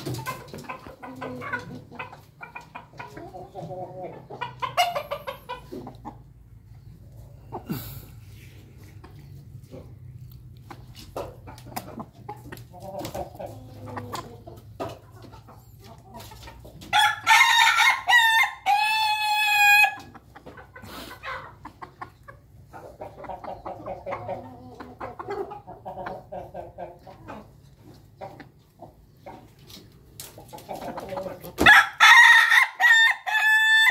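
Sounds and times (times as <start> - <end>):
chickens clucking: 0.0 - 33.9
rooster crowing: 17.0 - 20.0, 31.7 - 33.9.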